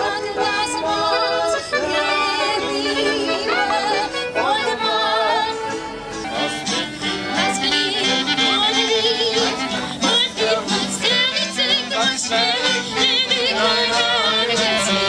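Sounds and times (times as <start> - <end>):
accordion: 0.0 - 15.0
acoustic guitar: 0.0 - 15.0
violin melody with vibrato: 0.0 - 15.0.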